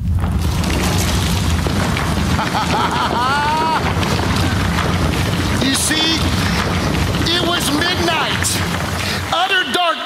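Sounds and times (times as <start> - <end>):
deep rumble with rushing hiss: 0.0 - 9.3.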